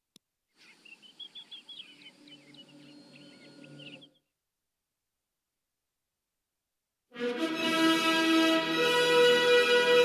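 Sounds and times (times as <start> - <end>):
birds chirping and whistling: 0.6 - 4.3.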